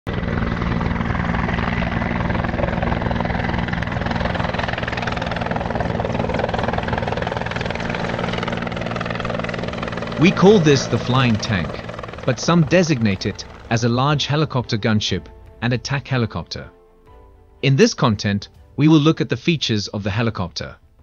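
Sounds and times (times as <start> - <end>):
helicopter rotor chop: 0.1 - 15.0.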